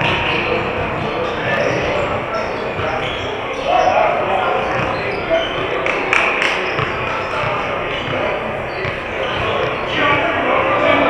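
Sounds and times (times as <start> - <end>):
echoing chatter: 0.0 - 11.0
basketballs bouncing on hardwood: 4.7 - 10.2.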